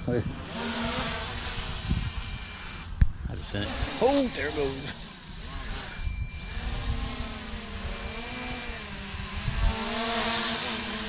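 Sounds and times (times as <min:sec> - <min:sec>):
drone propellers whirring: 0:00.0 - 0:11.0.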